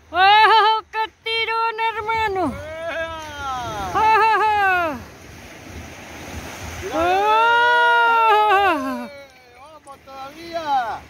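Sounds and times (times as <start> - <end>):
surf on a beach: 0.0 - 11.0
wind buffeting microphone: 1.8 - 9.1
person laughing: 4.0 - 5.0, 8.2 - 9.2.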